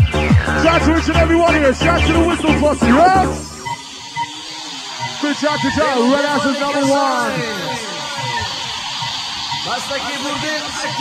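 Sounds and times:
dance track breakdown: 0.0s - 11.0s
person's voice over music: 0.5s - 3.5s.

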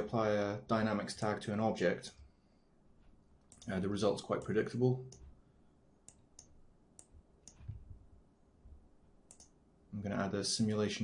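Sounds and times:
computer mouse clicks: 3.0s - 3.8s, 5.1s - 5.4s, 6.0s - 7.9s, 9.3s - 9.6s.

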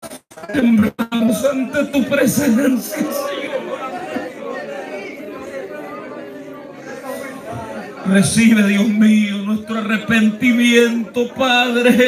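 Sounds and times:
congregation praying aloud: 0.4s - 12.0s.

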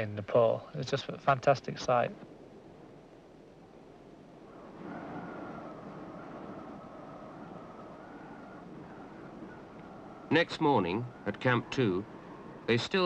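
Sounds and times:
steady rushing noise: 0.0s - 13.0s.

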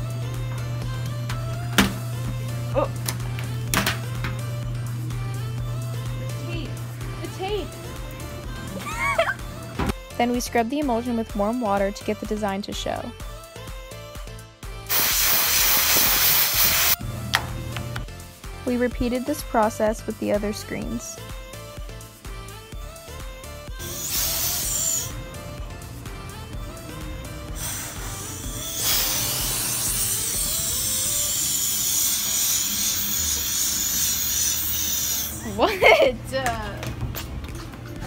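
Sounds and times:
background music: 0.0s - 38.0s
hose spray hissing: 14.9s - 17.0s, 23.8s - 25.1s, 27.6s - 35.7s
water spraying onto a screen: 14.9s - 17.0s.

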